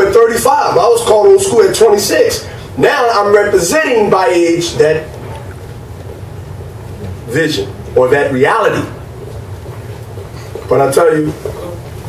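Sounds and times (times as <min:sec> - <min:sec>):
low room hum and rumble: 0:00.0 - 0:12.0.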